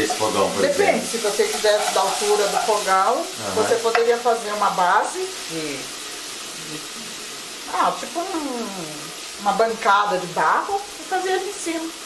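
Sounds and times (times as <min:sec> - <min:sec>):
garlic and onion sizzling in oil: 0:00.0 - 0:12.0.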